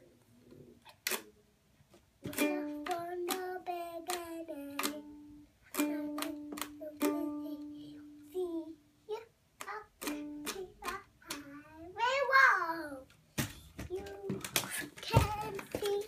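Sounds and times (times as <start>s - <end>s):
ukulele strumming: 2.2s - 8.6s, 9.6s - 11.5s.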